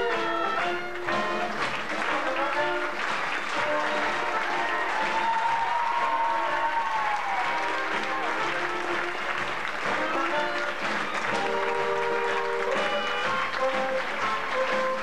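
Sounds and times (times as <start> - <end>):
audience applause: 0.0 - 15.0
band playing music: 0.0 - 15.0.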